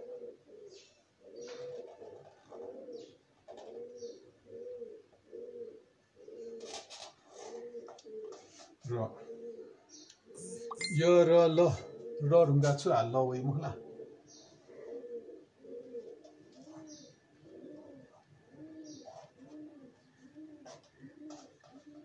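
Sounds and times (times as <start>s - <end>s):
pigeon cooing: 0.0s - 22.0s.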